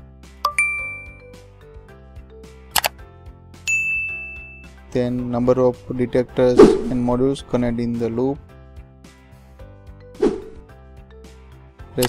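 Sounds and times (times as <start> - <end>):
faint background music: 0.0 - 12.0
bright chime dings: 0.4 - 1.5, 3.7 - 4.8.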